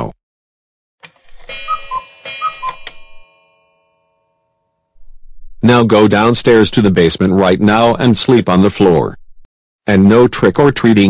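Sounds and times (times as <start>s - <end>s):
chiming notes: 1.4s - 5.0s.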